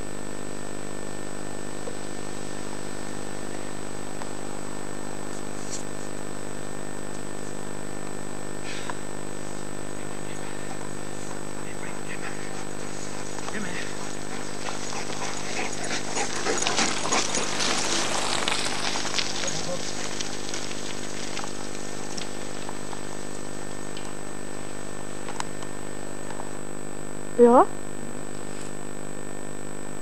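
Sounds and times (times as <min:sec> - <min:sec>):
electrical hum: 0:00.0 - 0:30.0
rustling through dry leaves: 0:09.4 - 0:25.2.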